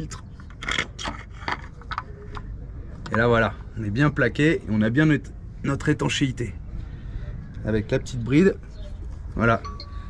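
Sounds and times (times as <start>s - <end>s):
oil filter clicking and scraping: 0.0s - 3.3s.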